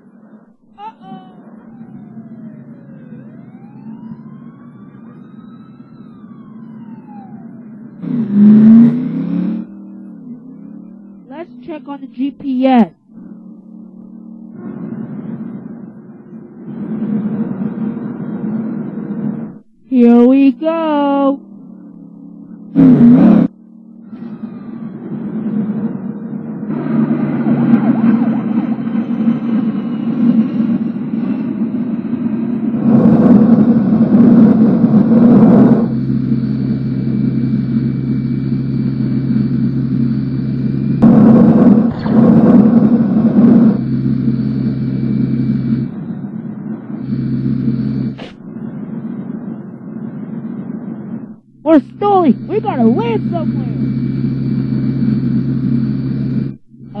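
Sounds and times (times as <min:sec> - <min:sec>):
cartoon vehicle engine rumble: 0:00.0 - 0:57.0.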